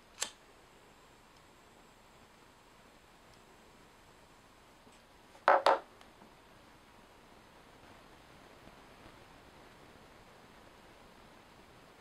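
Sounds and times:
plastic lighter knocking on desk: 0:05.5 - 0:05.8.

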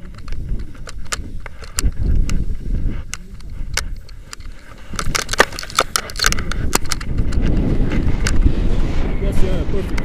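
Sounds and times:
metallic buckle clicks: 0:00.0 - 0:07.5
wind buffeting microphone: 0:00.0 - 0:10.0.

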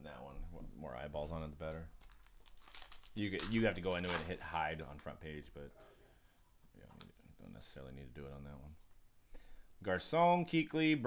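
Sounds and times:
foil wrapper crinkling and tearing: 0:01.7 - 0:04.9.

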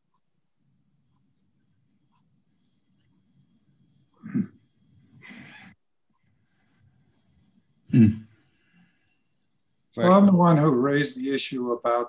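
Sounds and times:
person humming mm: 0:07.9 - 0:08.3.

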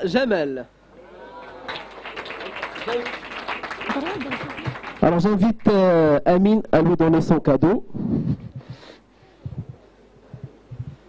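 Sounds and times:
audience applauding: 0:01.3 - 0:05.8.

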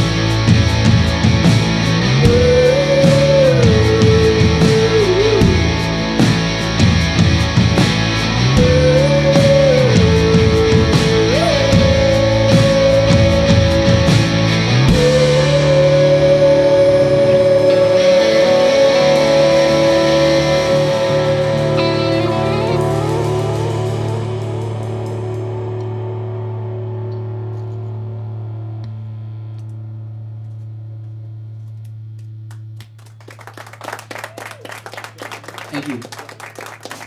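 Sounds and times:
electric guitars and bass chord: 0:00.0 - 0:32.9
people clapping: 0:32.1 - 0:37.0.

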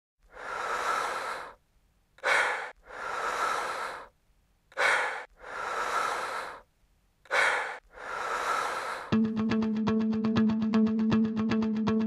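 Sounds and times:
person breathing heavily: 0:00.2 - 0:01.6, 0:02.2 - 0:09.2.

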